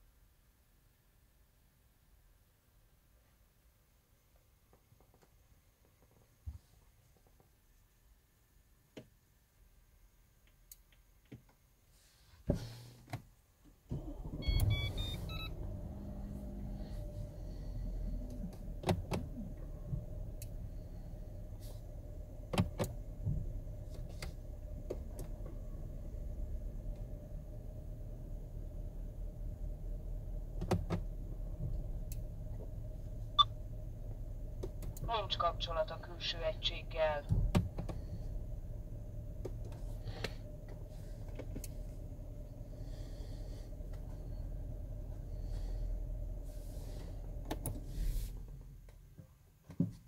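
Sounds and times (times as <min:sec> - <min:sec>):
car engine starting and idling: 0:12.5 - 0:49.8
electronic beeps: 0:14.4 - 0:15.5
sharp clicks in car cabin: 0:18.3 - 0:19.4, 0:22.5 - 0:25.6, 0:30.6 - 0:32.7, 0:34.6 - 0:35.1, 0:37.3 - 0:38.0, 0:39.4 - 0:41.8, 0:47.4 - 0:47.8.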